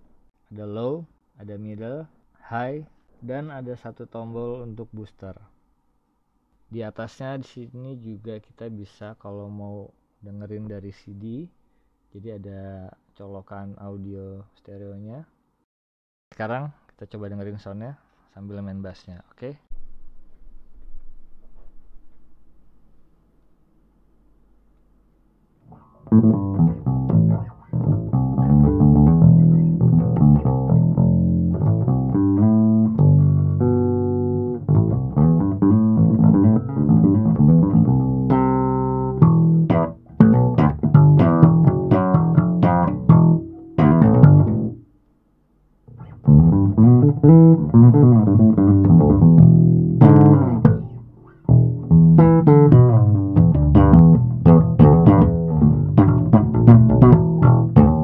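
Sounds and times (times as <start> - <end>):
electric bass plucked notes: 25.7 - 44.8, 45.9 - 58.0.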